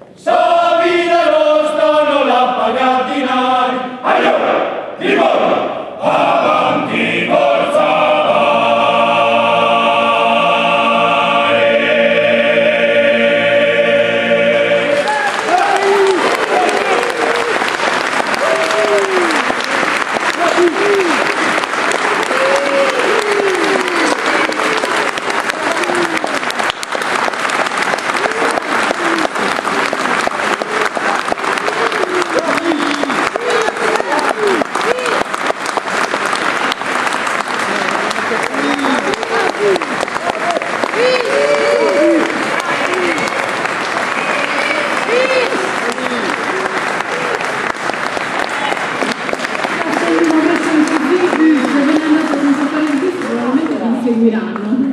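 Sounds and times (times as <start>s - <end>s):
audience applauding: 14.5s - 54.1s.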